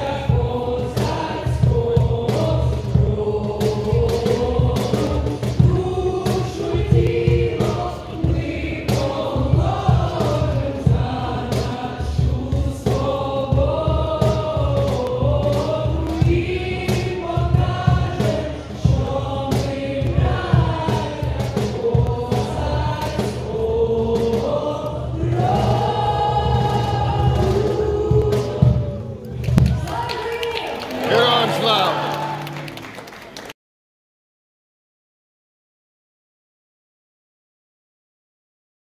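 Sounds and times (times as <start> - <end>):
regular beat: 0.0 - 29.0, 31.0 - 32.8
group singing in chorus: 0.0 - 29.9, 30.9 - 32.9.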